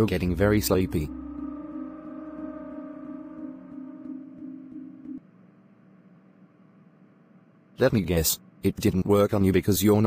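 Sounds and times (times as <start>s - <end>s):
electronic humming tone: 0.0s - 5.3s.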